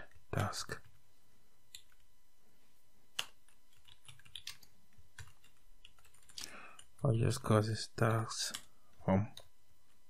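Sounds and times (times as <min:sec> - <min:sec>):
typing on computer keyboard: 0:03.2 - 0:07.0.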